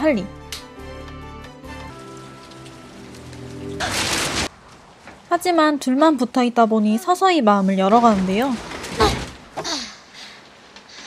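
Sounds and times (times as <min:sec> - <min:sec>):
steady rain falling: 0:01.5 - 0:07.3.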